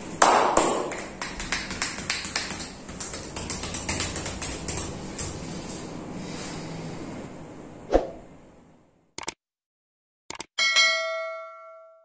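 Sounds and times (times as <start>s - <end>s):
short clicks: 9.2s - 9.4s, 10.3s - 10.5s
bell ding: 10.6s - 12.0s.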